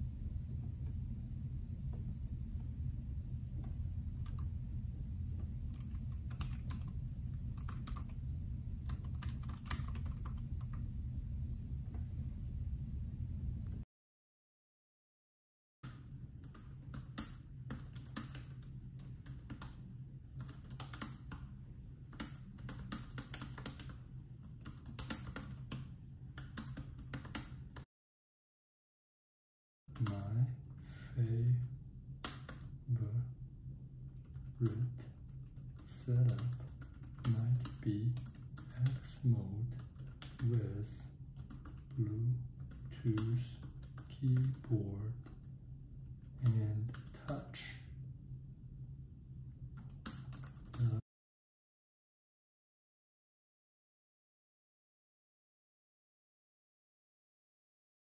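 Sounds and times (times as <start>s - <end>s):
faint steady low hum: 0.0s - 13.8s, 15.9s - 27.8s, 29.9s - 51.0s
low voice: 50.8s - 51.0s.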